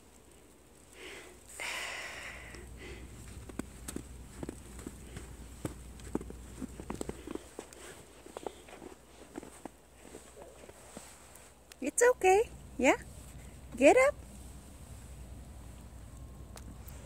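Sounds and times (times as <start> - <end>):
footsteps crunching in snow: 2.7 - 11.7.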